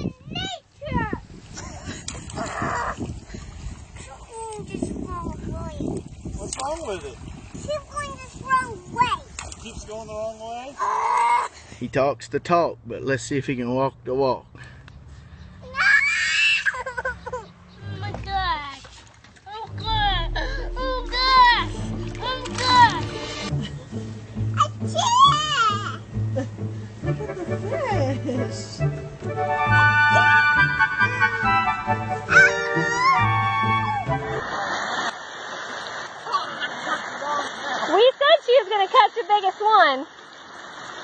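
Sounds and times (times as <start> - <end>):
child shrieking: 15.7 - 16.8
background music: 19.7 - 34.5.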